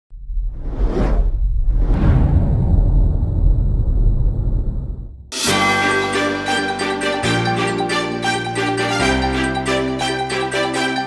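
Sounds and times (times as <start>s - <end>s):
deep low rumble: 0.1s - 5.3s.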